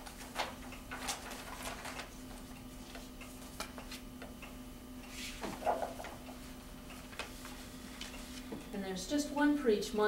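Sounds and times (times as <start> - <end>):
paper sheets rustling: 0.0 - 4.0, 5.2 - 6.3
steady low hum: 0.0 - 10.0.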